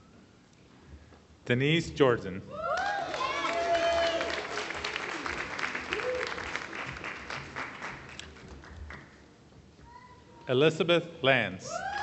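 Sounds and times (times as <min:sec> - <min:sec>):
audience applauding: 0:02.8 - 0:09.1.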